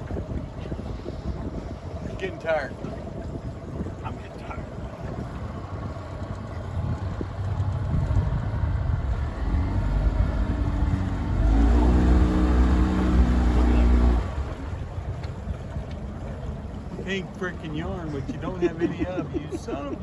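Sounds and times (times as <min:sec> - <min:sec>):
boat motor humming: 0:00.0 - 0:20.0
water washing: 0:00.0 - 0:20.0
wind: 0:00.0 - 0:20.0.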